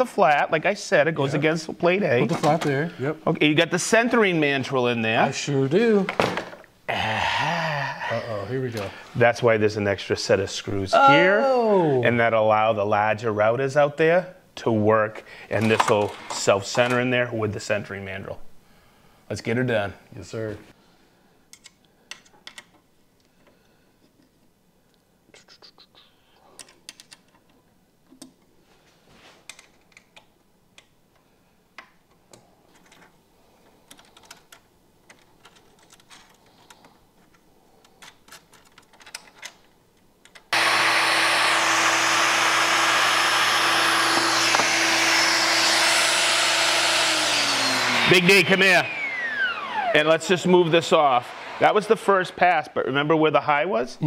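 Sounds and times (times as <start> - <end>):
router running: 40.5 - 51.9
dust extractor hum: 40.5 - 52.7.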